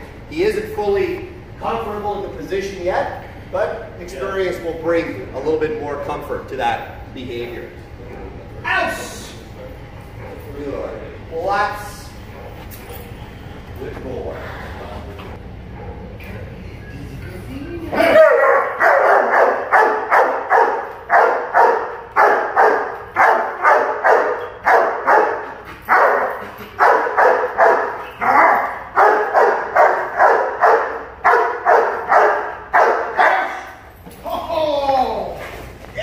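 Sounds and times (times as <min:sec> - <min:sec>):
dog barking: 0:12.3 - 0:13.1, 0:15.7 - 0:16.2, 0:18.0 - 0:33.8.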